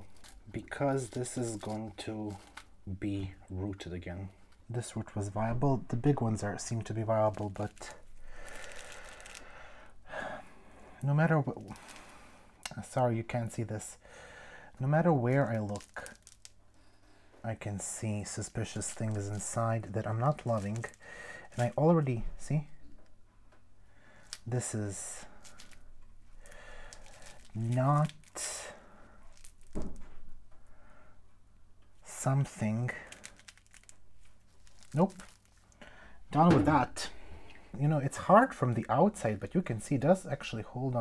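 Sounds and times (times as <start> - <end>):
fibres and roots crackling: 0.0 - 9.5, 14.8 - 22.7, 24.2 - 30.0, 32.0 - 37.1
person's sharp breath: 8.2 - 11.0.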